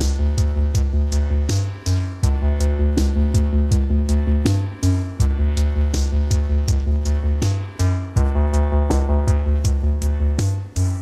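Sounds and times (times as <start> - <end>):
drum machine beat with hi-hats: 0.0 - 11.0
heavy bass line: 0.0 - 11.0
instrumental reggae music: 0.0 - 11.0.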